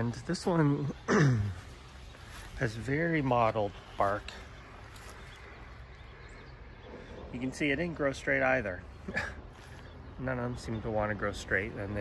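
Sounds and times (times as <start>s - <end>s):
distant bird chirps: 0.0s - 12.0s.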